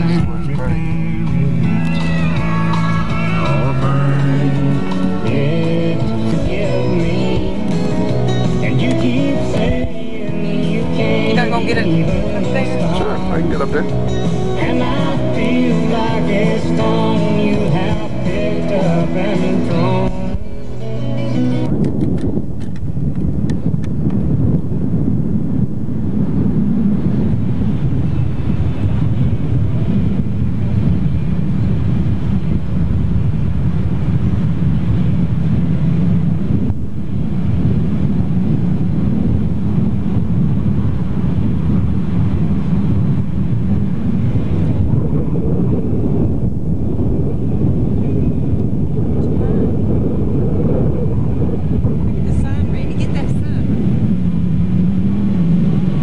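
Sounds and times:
truck engine: 0:00.0 - 0:22.0
road noise: 0:00.0 - 0:56.0
wind buffeting microphone: 0:00.0 - 0:56.0.

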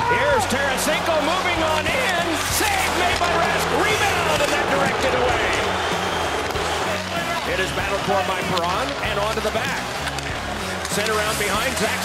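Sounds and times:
arena crowd noise: 0:00.0 - 0:12.0
hockey sticks knocking puck: 0:00.4 - 0:05.7, 0:06.4 - 0:12.0.

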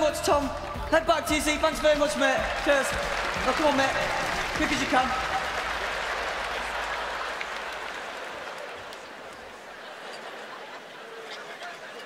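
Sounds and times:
audience applauding: 0:02.2 - 0:11.9.

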